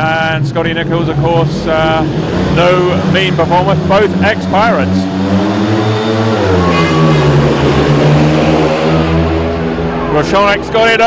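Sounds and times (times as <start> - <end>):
motorcycle engines racing: 0.0 - 11.0.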